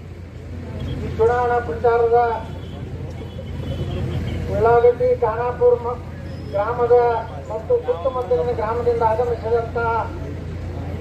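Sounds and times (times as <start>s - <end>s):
man speaking into a microphone: 1.0s - 3.0s, 3.6s - 10.4s.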